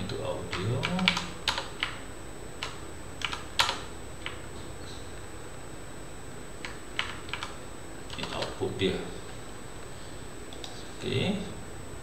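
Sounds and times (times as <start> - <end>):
computer keyboard keys clicking: 0.1 - 2.0, 2.6 - 4.4, 6.6 - 8.5.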